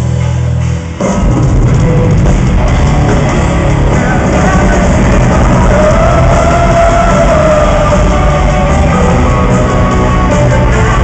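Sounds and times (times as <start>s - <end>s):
distorted guitars: 0.0s - 11.0s
drums: 0.0s - 11.0s.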